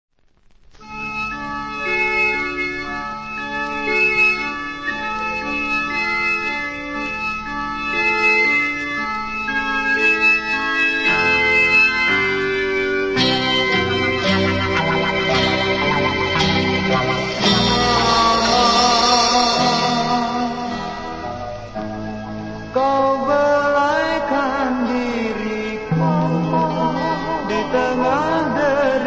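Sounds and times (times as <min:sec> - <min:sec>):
organ holding chords: 0:00.8 - 0:29.0
band playing: 0:10.3 - 0:23.0.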